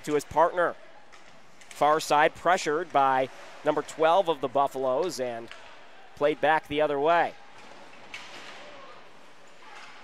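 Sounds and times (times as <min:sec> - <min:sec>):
low steady arena hiss: 0:00.0 - 0:10.0.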